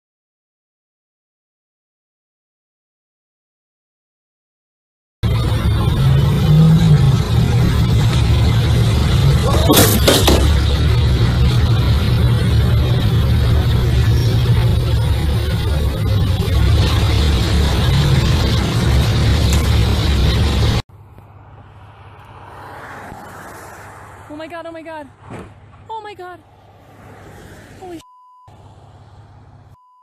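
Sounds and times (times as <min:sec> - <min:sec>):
heavy street noise rumble: 0:05.2 - 0:29.8
vehicle passing on highway: 0:17.2 - 0:29.8.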